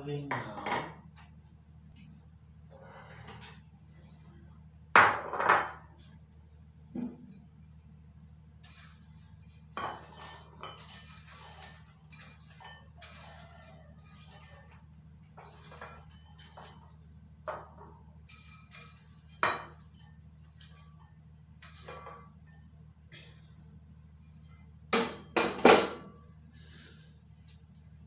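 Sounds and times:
steady low hum: 0.0s - 28.0s
popcorn rustling: 8.6s - 14.8s.

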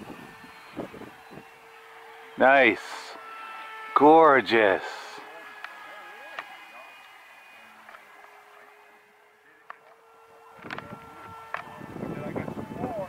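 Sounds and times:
electric model airplane whine: 0.0s - 13.0s
voices: 0.0s - 13.0s.

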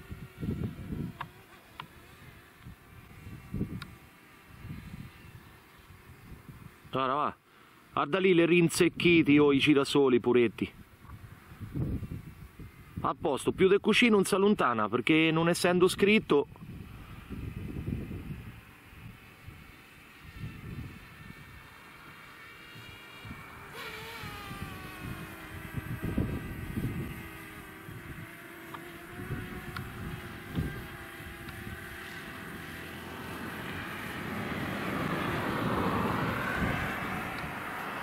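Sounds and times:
drone propellers whining: 16.6s - 38.0s
car passing: 32.3s - 38.0s.

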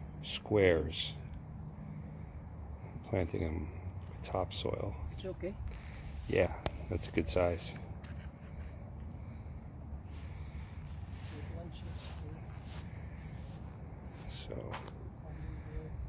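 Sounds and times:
crickets chirping: 0.0s - 16.0s.

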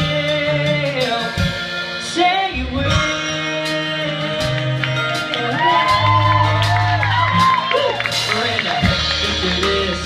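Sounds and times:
live band playing country-pop ballad: 0.0s - 10.0s
audience whooping: 5.0s - 10.0s.

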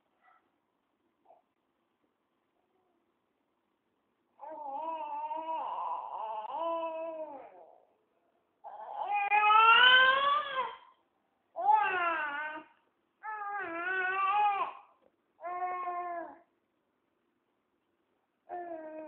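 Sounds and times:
baby fussing and crying: 4.4s - 7.8s, 8.6s - 11.0s, 11.6s - 16.5s.

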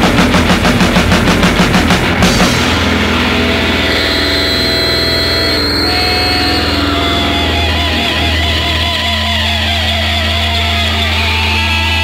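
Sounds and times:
fast hardcore punk band playing: 0.0s - 12.0s.

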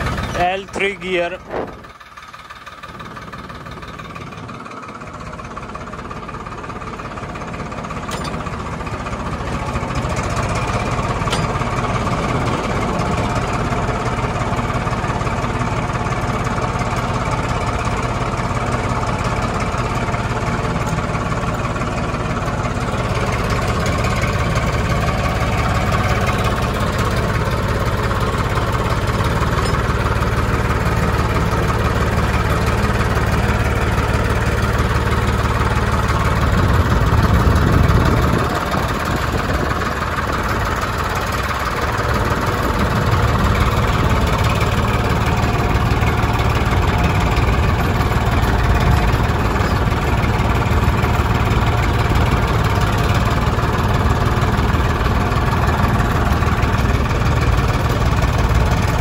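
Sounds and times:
tractor diesel engine under load: 0.0s - 59.0s.

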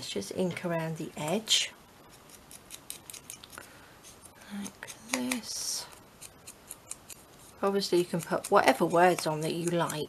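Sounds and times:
ink dauber dabbing paper: 4.0s - 10.0s.

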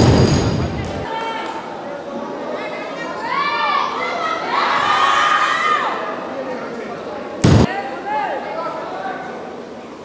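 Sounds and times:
crowd background noise: 0.0s - 10.0s.

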